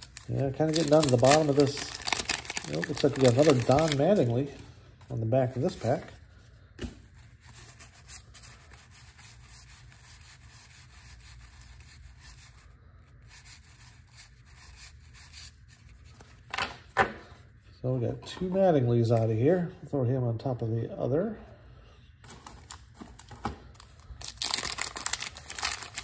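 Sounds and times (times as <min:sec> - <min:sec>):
cards rustling while shuffled: 0:00.0 - 0:06.2, 0:22.3 - 0:26.0.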